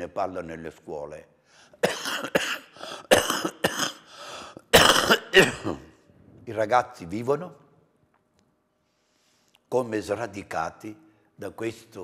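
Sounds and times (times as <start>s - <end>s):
man coughing: 1.8s - 6.0s.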